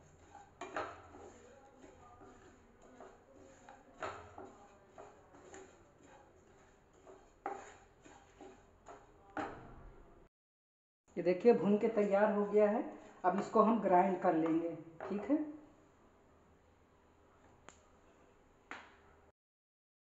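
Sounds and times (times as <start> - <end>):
wooden spatula scraping pan: 0.0 - 9.6, 11.4 - 15.4.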